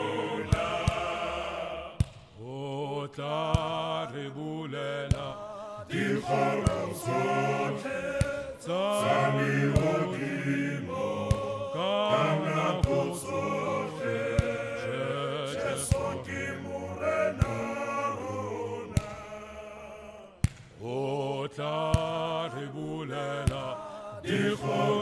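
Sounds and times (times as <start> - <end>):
group singing without instruments: 0.0 - 25.0.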